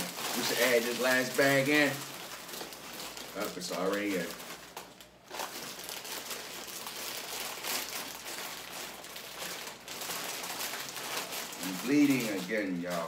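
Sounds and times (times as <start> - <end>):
chips spilling out: 0.0 - 2.1, 3.2 - 4.4, 5.4 - 13.0
chip bags rustling and crackling: 0.0 - 13.0.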